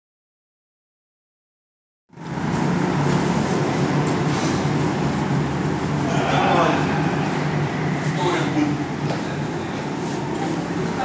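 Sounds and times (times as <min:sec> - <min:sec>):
go-kart engines running: 0:02.2 - 0:11.0.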